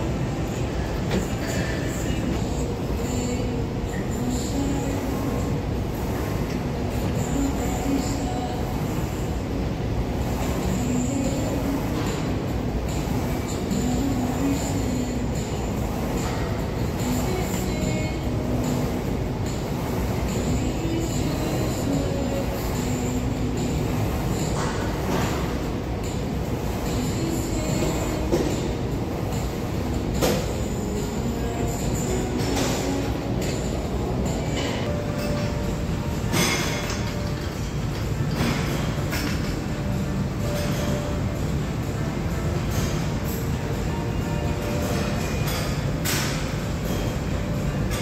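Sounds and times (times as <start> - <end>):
low rumble in large hall: 0.0 - 48.0.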